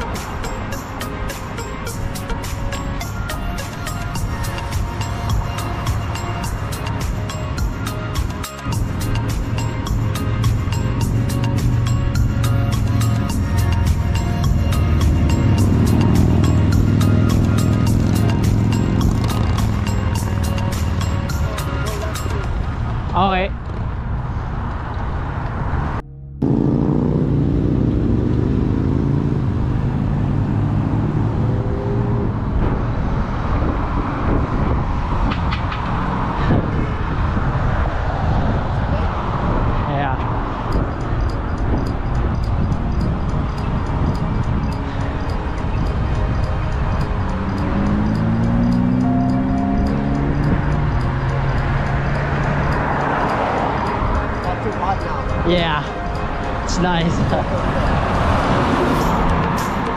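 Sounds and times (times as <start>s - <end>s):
road traffic passing: 0.0s - 59.9s
wind buffeting microphone: 31.7s - 59.9s.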